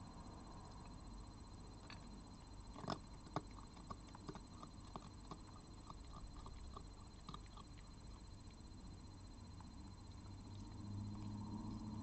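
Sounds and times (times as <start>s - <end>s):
fox crunching dry kibble: 2.7s - 8.7s.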